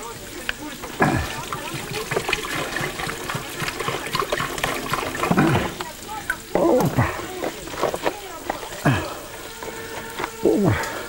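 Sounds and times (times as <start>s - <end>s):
water poured into a metal pot: 0.0s - 10.8s.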